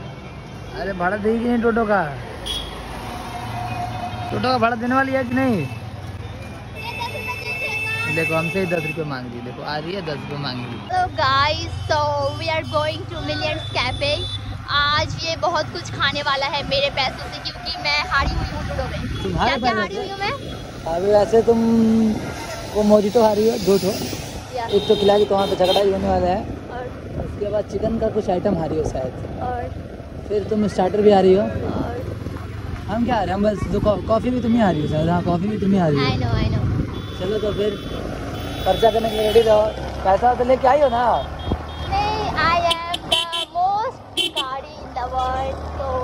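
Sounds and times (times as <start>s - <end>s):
low rumble of street traffic: 0.0s - 46.0s.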